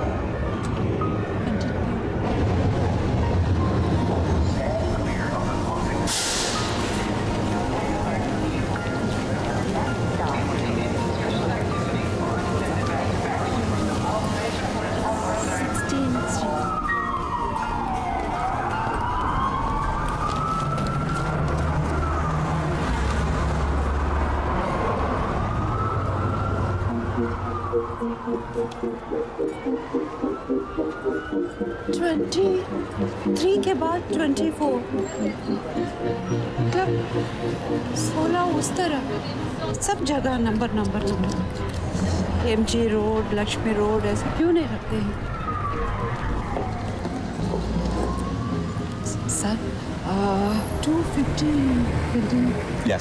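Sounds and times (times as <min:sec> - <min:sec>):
emergency siren wailing: 0:00.0 - 0:52.8
subway train rumbling: 0:00.0 - 0:53.0.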